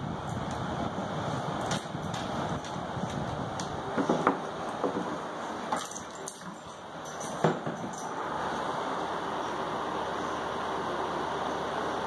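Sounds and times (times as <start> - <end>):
steady rushing noise: 0.0 - 5.7.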